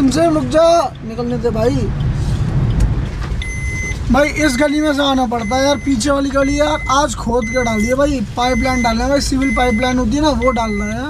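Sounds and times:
car engine and tyres rumbling: 0.0 - 11.0
high electronic beep: 3.4 - 11.0.

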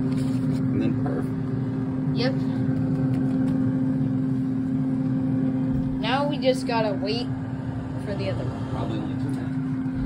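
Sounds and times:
air fryer fan humming: 0.0 - 10.0.

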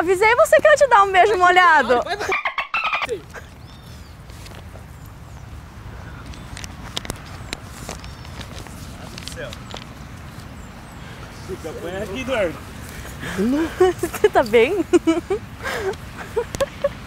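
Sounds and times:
outdoor background noise: 0.0 - 17.0
chirping bird calls: 2.3 - 4.2.

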